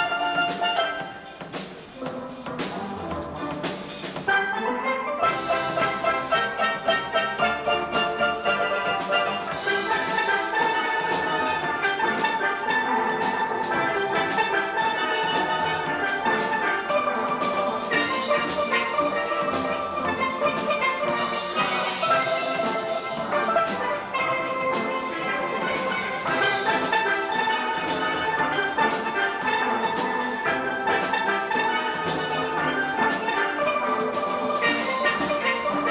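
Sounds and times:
steel band playing: 0.0 - 35.9.

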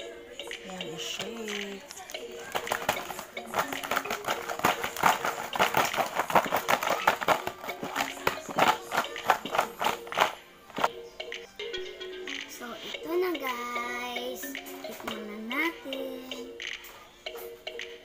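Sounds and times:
background music: 0.0 - 18.0
food sticks rattling in plastic tub: 1.2 - 10.9.

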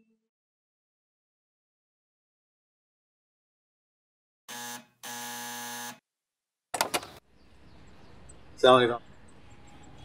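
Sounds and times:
electric doorbell buzzer: 4.5 - 6.0.

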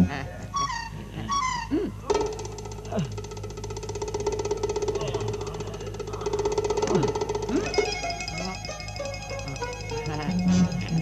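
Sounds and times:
held tone over fast pulse: 1.2 - 11.0
plucked-string notes: 1.9 - 11.0.

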